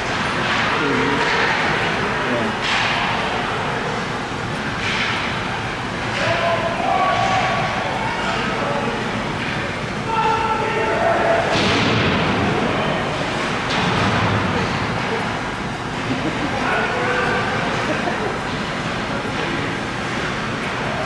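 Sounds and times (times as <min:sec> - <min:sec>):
skating and play noise: 0:00.0 - 0:04.0, 0:04.7 - 0:05.3, 0:06.0 - 0:21.0
people shouting: 0:06.1 - 0:08.6, 0:10.1 - 0:11.6.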